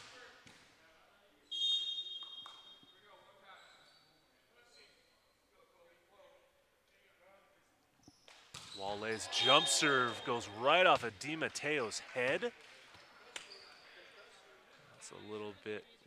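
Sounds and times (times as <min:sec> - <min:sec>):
referee's whistle: 0:01.5 - 0:03.0, 0:08.8 - 0:11.4.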